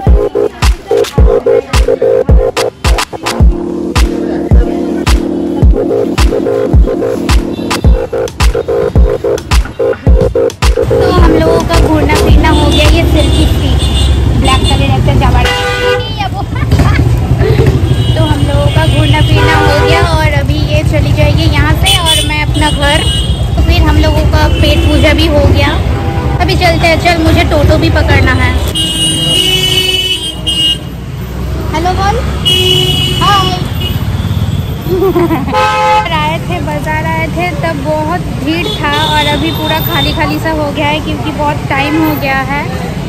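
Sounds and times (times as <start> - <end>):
background chatter: 0.0 - 7.3, 36.0 - 43.0
traffic engine rumble: 0.0 - 43.0
vehicle horns tooting: 6.5 - 16.2, 17.7 - 20.2, 28.6 - 30.9, 32.4 - 34.9, 35.5 - 36.2, 38.5 - 40.4.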